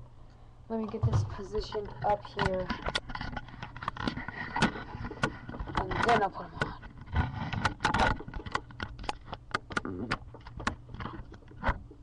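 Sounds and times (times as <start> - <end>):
rubbing against microphone: 1.3 - 12.0.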